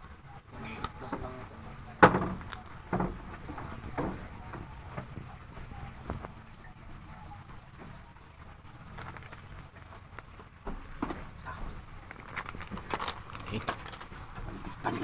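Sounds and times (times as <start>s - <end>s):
faint steady background noise: 0.0s - 15.0s.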